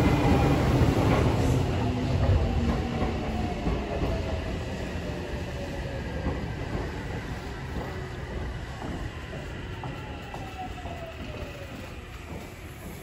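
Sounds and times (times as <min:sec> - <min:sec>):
electric train rumble: 0:00.0 - 0:13.0.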